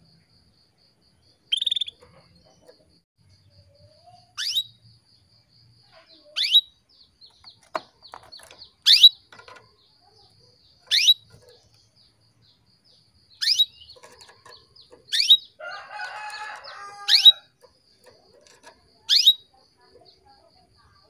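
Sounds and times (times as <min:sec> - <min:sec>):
canary chirps: 0:01.3 - 0:21.0.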